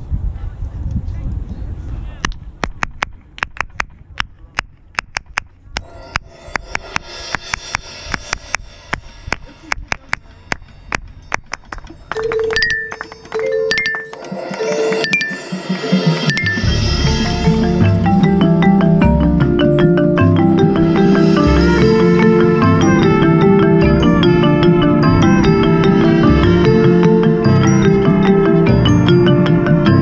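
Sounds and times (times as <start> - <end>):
sharp clicks keeping time: 8.1 - 15.4
marching band held note: 20.8 - 30.0.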